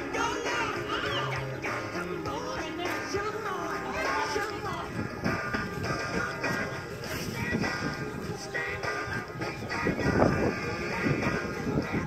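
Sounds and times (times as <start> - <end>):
music playing from a radio: 0.0 - 12.0.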